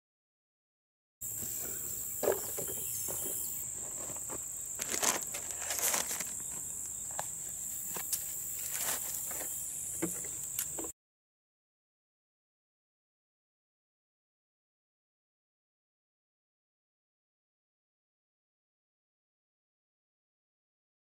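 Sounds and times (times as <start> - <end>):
high-pitched insect drone: 1.2 - 10.9
plastic plant pots rustling: 1.4 - 10.9.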